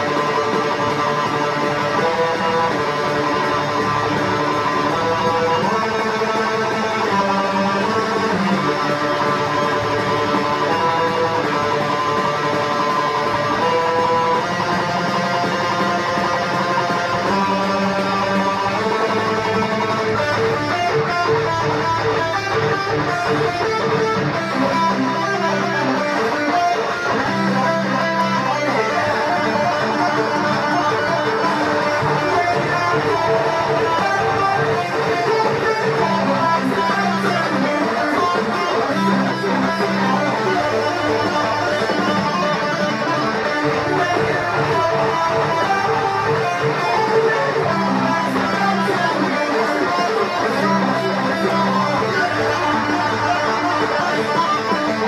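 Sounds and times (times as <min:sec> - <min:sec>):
electric guitar riffs: 0:00.0 - 0:55.0.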